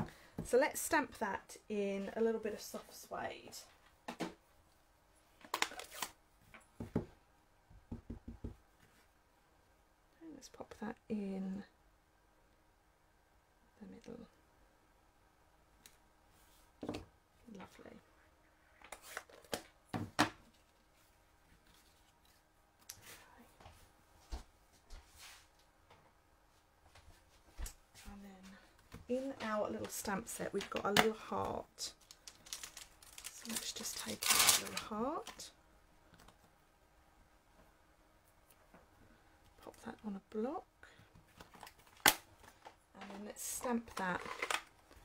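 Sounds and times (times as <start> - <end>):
paper rustling: 32.0 - 35.4.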